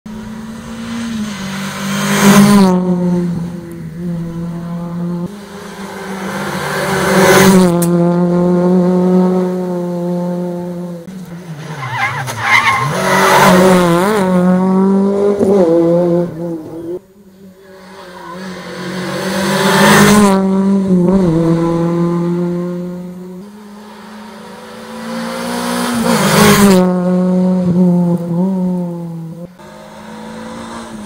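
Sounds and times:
rally car engine passing: 0.1s - 31.0s.

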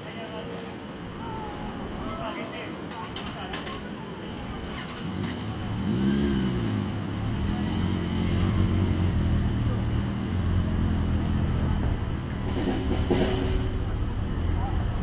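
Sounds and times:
motorcycle engine starting and idling: 4.5s - 15.0s.

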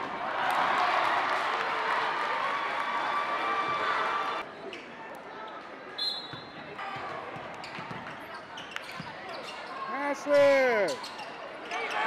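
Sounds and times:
person shouting: 10.0s - 11.0s.

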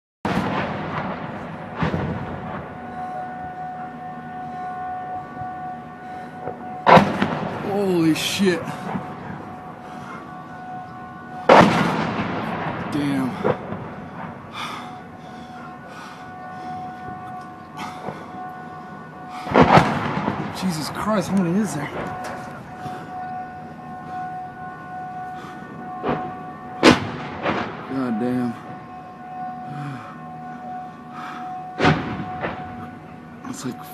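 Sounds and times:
steady humming tone: 1.2s - 33.9s
mortar rounds exploding: 11.5s - 13.8s.

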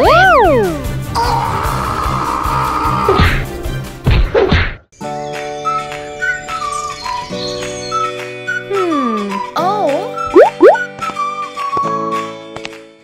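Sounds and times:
cartoon scream: 1.2s - 3.3s
light children's background music: 5.0s - 13.0s.

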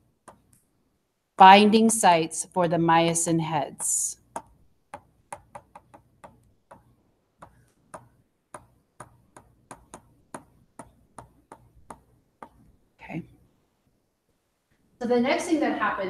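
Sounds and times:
stylus tapping on tablet: 0.2s - 0.7s, 3.8s - 12.8s.

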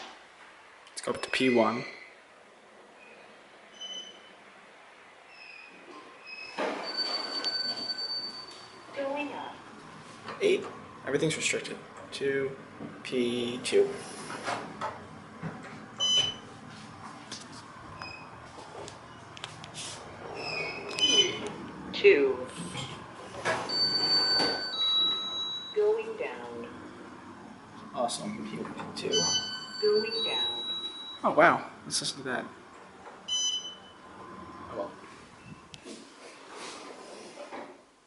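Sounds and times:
elevator button beep: 6.8s - 8.7s, 16.0s - 16.4s, 20.5s - 21.5s, 23.7s - 26.1s, 29.1s - 31.2s, 33.3s - 34.0s
high electronic tones: 20.4s - 21.5s, 29.1s - 31.3s.

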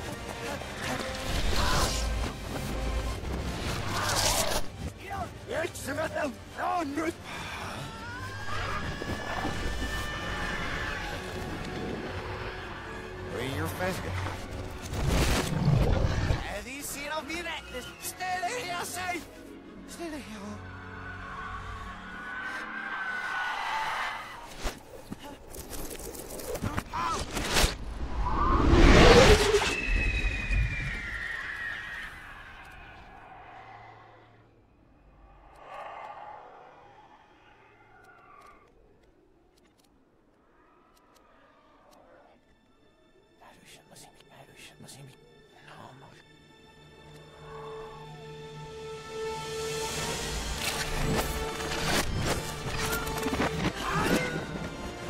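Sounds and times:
high whistling whine falling in pitch: 29.4s - 32.4s
reversed dragon roar: 35.1s - 38.8s.

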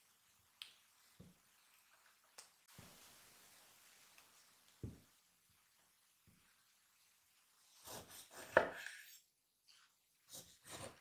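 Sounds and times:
knife slicing tomato: 7.7s - 9.3s, 10.3s - 11.0s.

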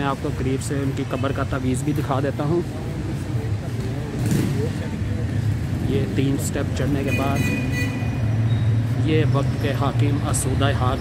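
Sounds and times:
faint voices: 0.0s - 7.4s
city traffic rumble: 0.0s - 11.0s.

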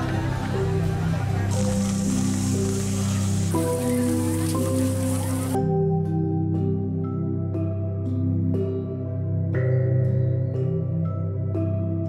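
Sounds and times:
instrumental background music: 0.0s - 12.0s
batter sizzling in metal pan: 1.5s - 5.6s.

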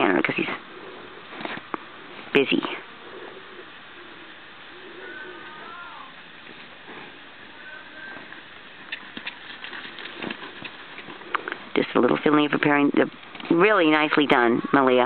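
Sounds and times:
horse hooves cantering on sand: 6.4s - 14.1s.

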